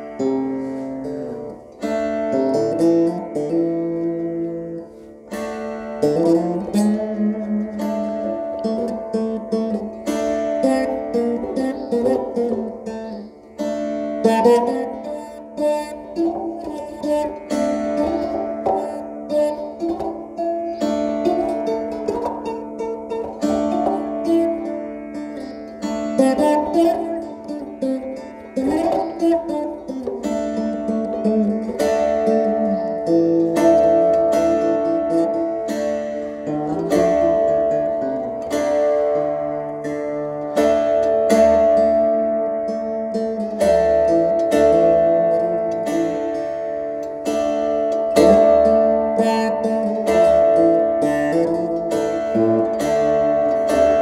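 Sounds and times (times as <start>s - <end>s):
veena plucked melody: 0.0s - 54.0s.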